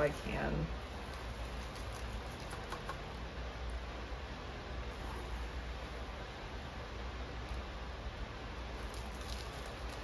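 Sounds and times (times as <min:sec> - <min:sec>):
potting mix rustling: 0:00.0 - 0:03.0, 0:04.8 - 0:10.0
steady low hum: 0:00.0 - 0:10.0.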